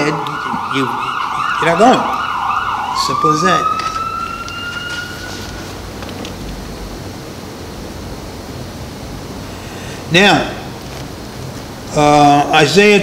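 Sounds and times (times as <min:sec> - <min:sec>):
emergency siren: 0:00.0 - 0:06.1
low room noise: 0:00.0 - 0:13.0.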